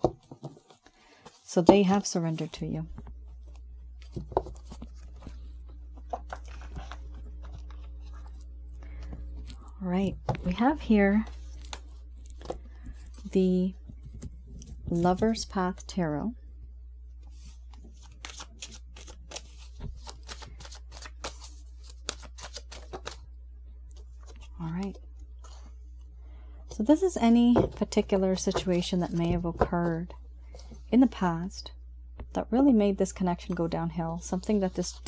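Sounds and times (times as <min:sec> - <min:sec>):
steady low hum: 0:00.0 - 0:35.0
cards tapping and clicking: 0:18.2 - 0:23.2.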